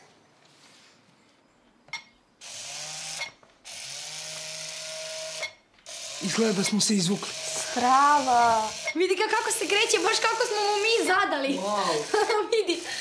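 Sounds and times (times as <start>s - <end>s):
robot electric motors whirring: 2.4s - 13.0s.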